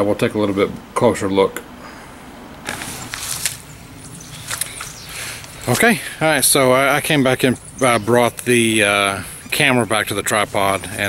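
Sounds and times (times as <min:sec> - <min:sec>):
steady background hiss: 0:00.0 - 0:11.0
handling rustles and clicks: 0:02.7 - 0:03.7, 0:04.4 - 0:05.8.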